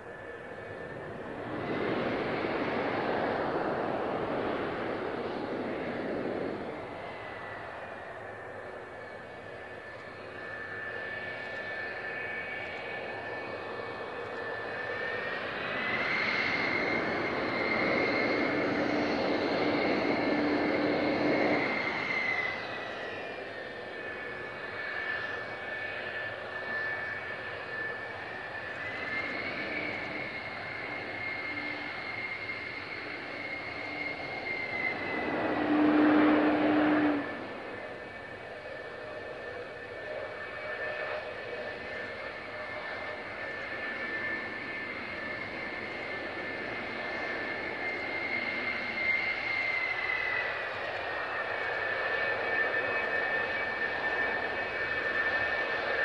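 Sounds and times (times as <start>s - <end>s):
jet engine roar: 0.0s - 56.0s
jet engine whine: 0.0s - 56.0s.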